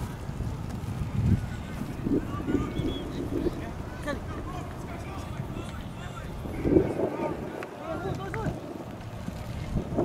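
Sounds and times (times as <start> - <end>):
wind rumble on microphone: 0.0 - 10.0
distant voices calling out: 1.4 - 9.1.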